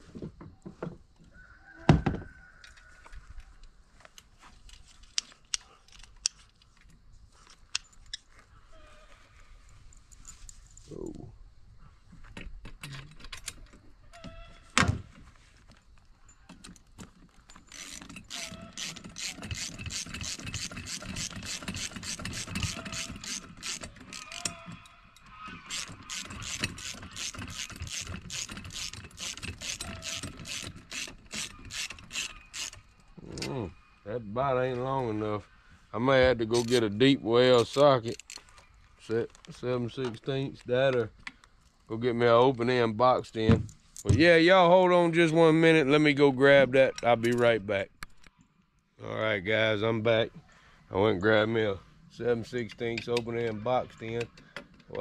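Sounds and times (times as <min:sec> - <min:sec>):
ratchet wrench clicking: 0:17.7 - 0:24.6, 0:25.7 - 0:32.8, 0:36.6 - 0:36.8.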